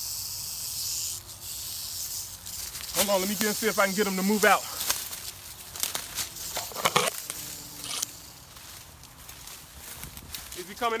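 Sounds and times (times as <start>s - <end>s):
dry twigs crackling and snapping: 4.4s - 10.8s.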